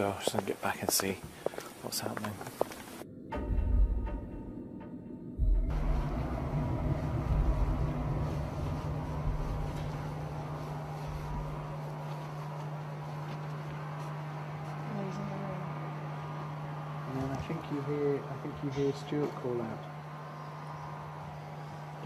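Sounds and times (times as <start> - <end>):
low electrical hum: 5.7 - 22.0.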